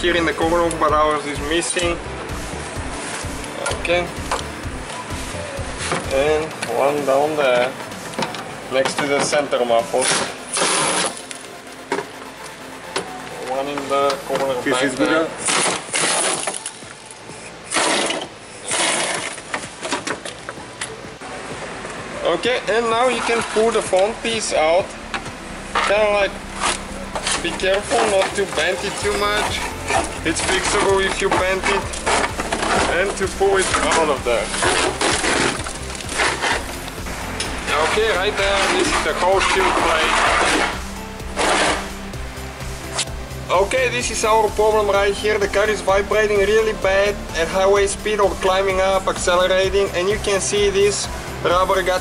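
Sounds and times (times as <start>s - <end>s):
shield plate scraping car underside: 17.4s - 20.3s, 25.7s - 42.0s.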